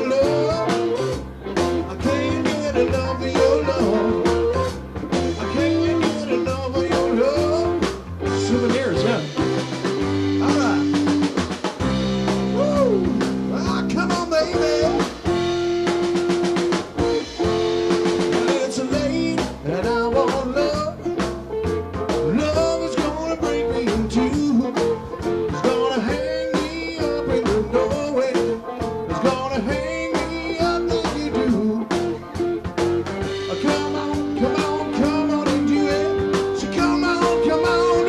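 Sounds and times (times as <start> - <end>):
drum kit: 0.0 - 38.0
electric guitar: 0.0 - 38.0
keyboard bass line: 0.0 - 38.0
keyboard chords: 0.0 - 38.0.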